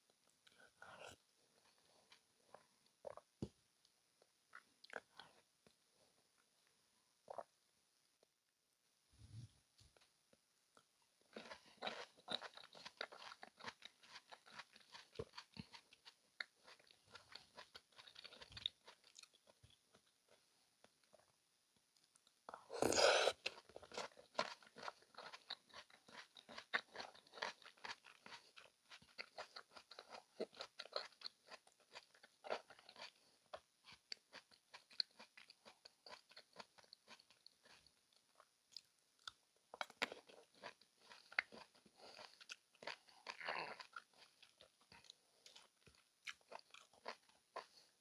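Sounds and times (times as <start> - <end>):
chewing soft fruit: 0.0 - 6.5, 9.2 - 48.0.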